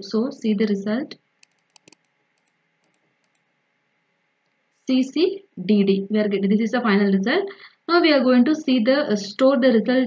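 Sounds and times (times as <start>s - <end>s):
computer mouse clicks: 1.4s - 3.5s.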